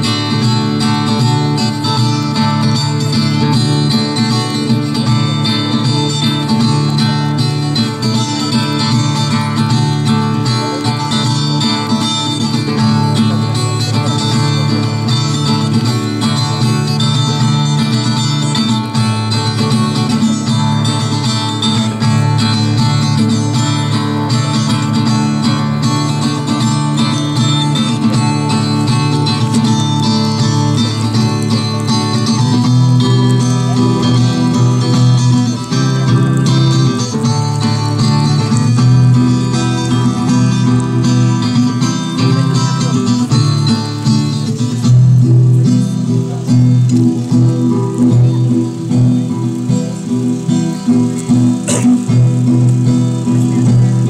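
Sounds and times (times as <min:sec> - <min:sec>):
solo acoustic guitar ballad: 0:00.0 - 0:54.0.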